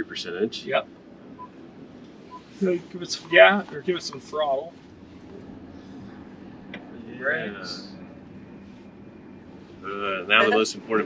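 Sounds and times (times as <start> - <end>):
electric motor and tyre hum: 0.0 - 11.0.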